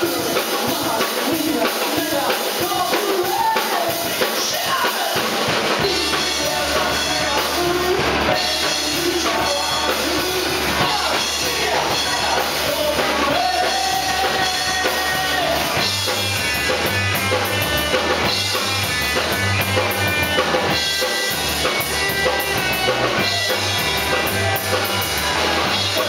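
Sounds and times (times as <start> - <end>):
live rock song: 0.0 - 26.0
pulsing bass line: 5.8 - 26.0.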